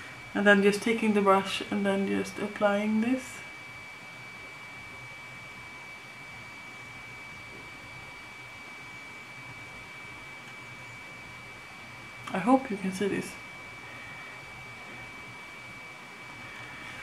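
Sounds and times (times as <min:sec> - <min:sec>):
high-pitched whine: 0:00.0 - 0:17.0
room tone hiss: 0:00.0 - 0:17.0.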